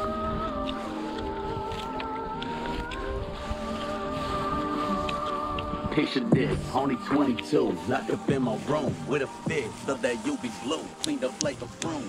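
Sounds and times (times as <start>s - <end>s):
wind rumble on microphone: 0.0s - 7.1s
melodic chords through a speaker: 0.0s - 12.0s.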